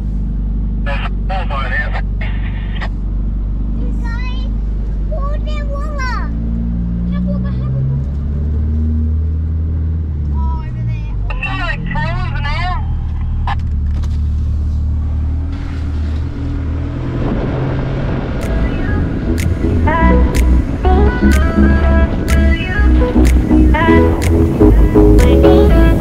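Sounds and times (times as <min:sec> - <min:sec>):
engine drone inside cabin: 0:00.0 - 0:06.2, 0:10.0 - 0:26.0.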